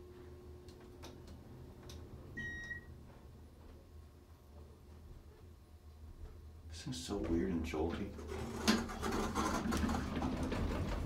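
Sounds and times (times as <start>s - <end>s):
steady low hum: 0.0s - 8.4s.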